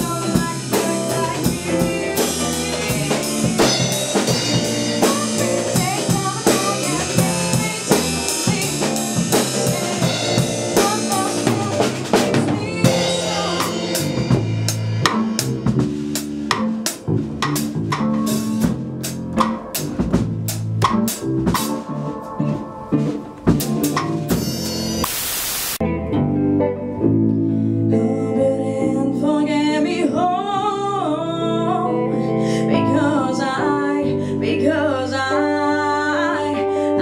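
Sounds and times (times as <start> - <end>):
drum kit: 0.0 - 26.9
electric bass: 0.0 - 36.2
electric guitar: 0.0 - 37.0.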